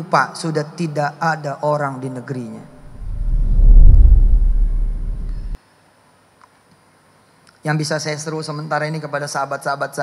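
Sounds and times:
loud deep rumble: 0:02.8 - 0:05.6.

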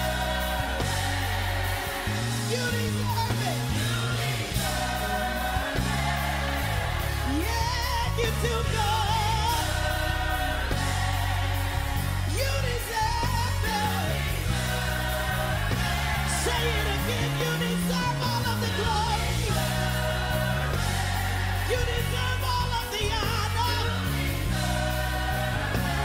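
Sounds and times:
band playing gospel music: 0:00.0 - 0:26.0.

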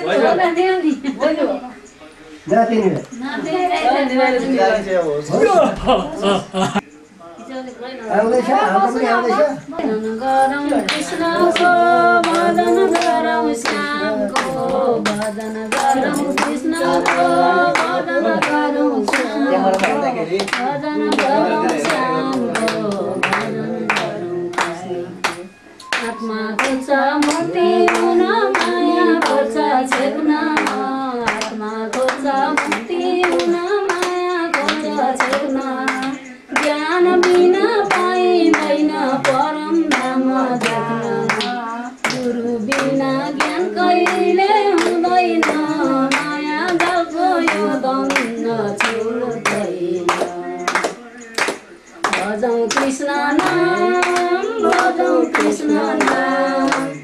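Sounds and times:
people singing devotional song: 0:00.0 - 0:57.0
hand-clapping: 0:09.8 - 0:57.0.

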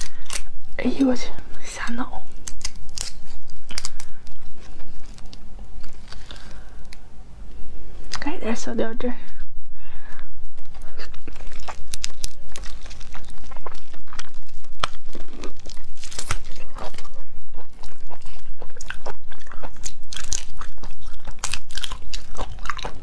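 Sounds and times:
prawn shell crunching: 0:00.0 - 0:00.6, 0:02.2 - 0:07.0, 0:10.6 - 0:23.0
shell crackling pulled apart: 0:02.4 - 0:04.1.

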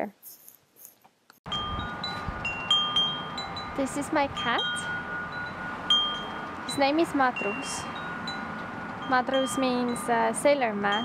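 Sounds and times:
wind chimes ringing: 0:01.5 - 0:11.0
wind noise on microphone: 0:01.5 - 0:11.0.

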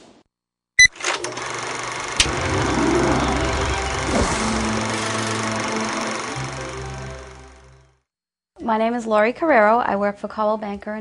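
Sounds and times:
projector reels whirring: 0:01.1 - 0:07.6.

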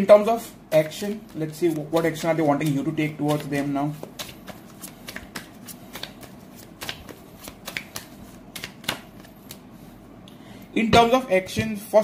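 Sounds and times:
cards being shuffled: 0:00.7 - 0:09.8.

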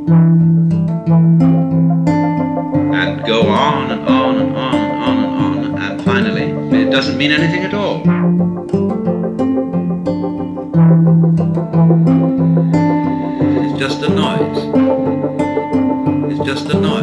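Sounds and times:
plucked guitar notes: 0:00.0 - 0:17.0
sustained low notes: 0:00.2 - 0:17.0.

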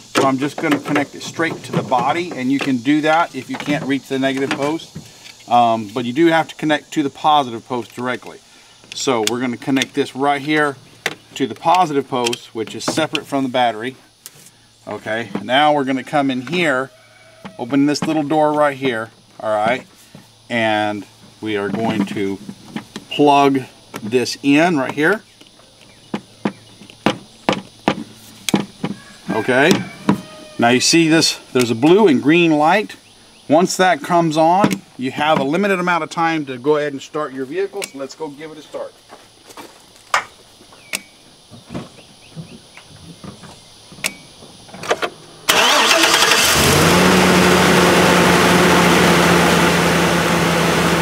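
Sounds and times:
truck engine starting and idling: 0:45.2 - 0:51.0.

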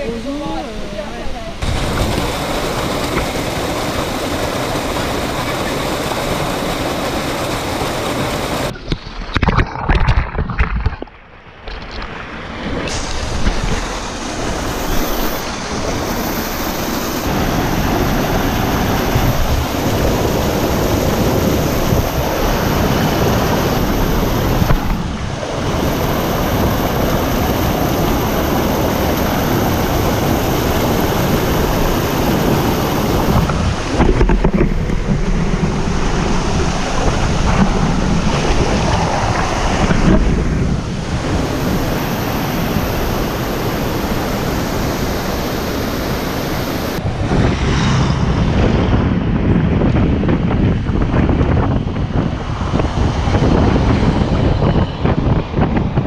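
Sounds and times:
whitewater rushing over boulders: 0:00.0 - 0:47.1.

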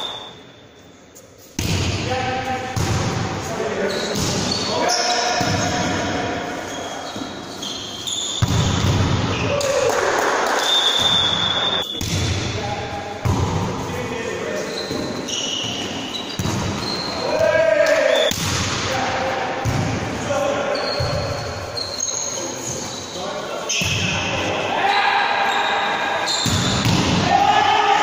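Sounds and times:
shoes squeaking on court: 0:03.8 - 0:09.4, 0:14.5 - 0:17.4, 0:20.7 - 0:24.1
volleyball being struck: 0:08.4 - 0:09.3, 0:11.9 - 0:12.5, 0:26.4 - 0:27.3
players shouting calls: 0:14.6 - 0:28.0.

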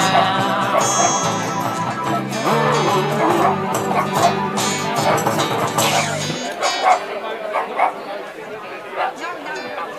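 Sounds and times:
short vocal calls: 0:00.0 - 0:06.5
live band with guitars and hand drum: 0:00.0 - 0:07.2.

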